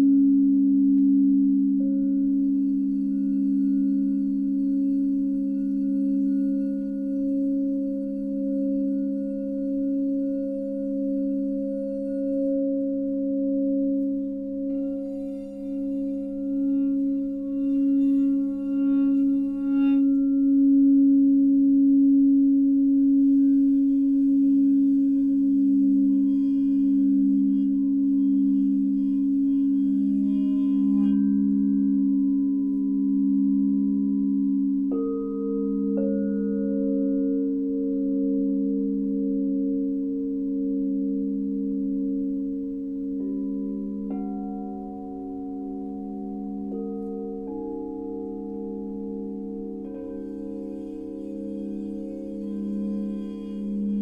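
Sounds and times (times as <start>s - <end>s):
higher ringing bowl tones: 0.0s - 54.0s
singing bowls low tones: 0.0s - 54.0s.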